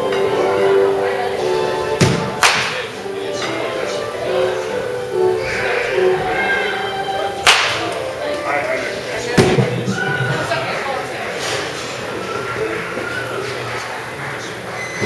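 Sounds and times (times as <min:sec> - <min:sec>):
background music: 0:00.0 - 0:10.9
bat cracking a ball: 0:02.0 - 0:02.8, 0:07.4 - 0:07.9.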